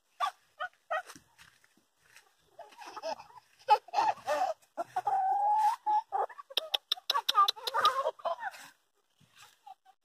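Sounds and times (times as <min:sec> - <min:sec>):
hens clucking: 0:02.1 - 0:10.0.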